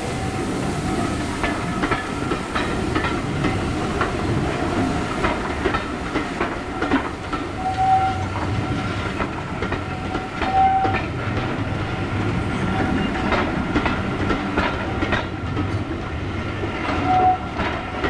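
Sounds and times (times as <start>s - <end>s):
train rumble over bridge: 0.0s - 18.0s
train wheels clicking over rail joints: 1.2s - 18.0s.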